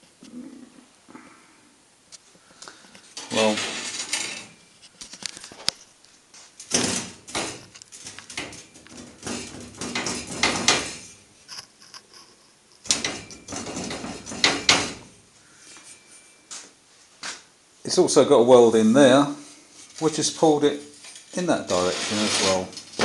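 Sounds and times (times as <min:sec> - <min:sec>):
scraping and rustling: 0:02.9 - 0:17.5, 0:19.3 - 0:23.0.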